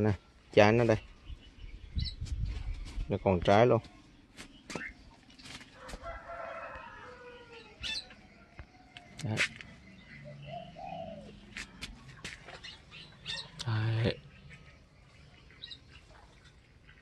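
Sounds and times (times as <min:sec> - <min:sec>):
rooster crowing: 0:05.8 - 0:07.8.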